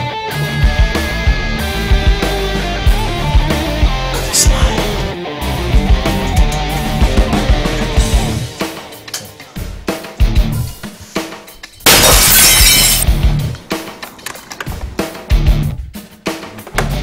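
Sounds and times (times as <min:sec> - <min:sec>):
background music: 0:00.0 - 0:17.0
glass breaking crash: 0:11.8 - 0:13.1.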